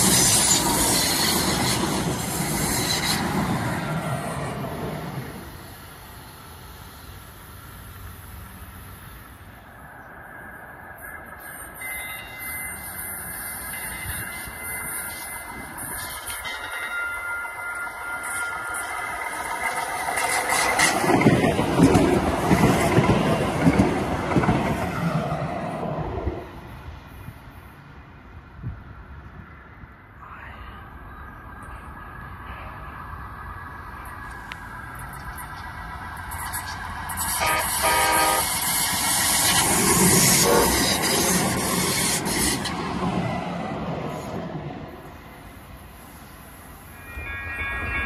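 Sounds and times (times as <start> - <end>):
train wheels rumbling over track: 0.0 - 30.1, 30.9 - 48.0
train horn blast: 37.2 - 38.6, 40.3 - 41.0.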